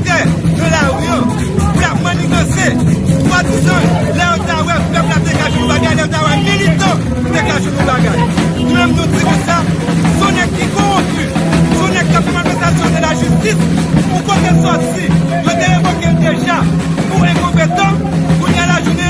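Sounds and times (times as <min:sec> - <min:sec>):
background music: 0:00.0 - 0:19.0
crowd chatter: 0:00.0 - 0:19.0
man speaking into a microphone: 0:00.0 - 0:19.0.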